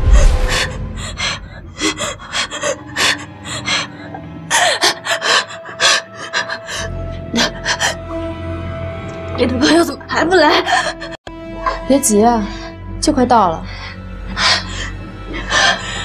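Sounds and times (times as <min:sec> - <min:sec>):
low drone: 0:00.0 - 0:10.2
tense music: 0:00.0 - 0:16.0.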